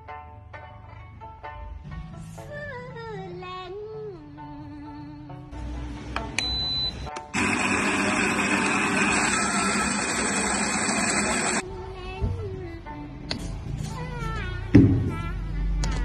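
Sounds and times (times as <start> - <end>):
coffee grinder grinding beans: 7.3 - 11.6.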